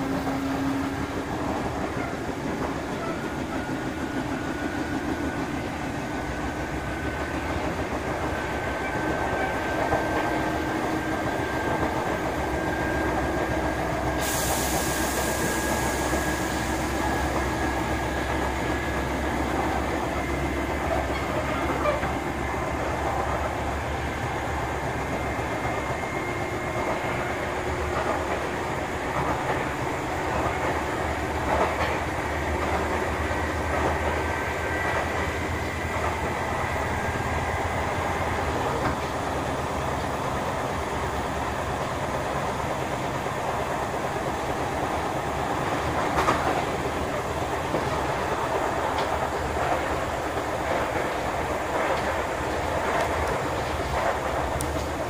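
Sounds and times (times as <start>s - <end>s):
train wheels rumbling on rail: 0.0s - 55.0s
burst of air hiss: 14.1s - 17.0s.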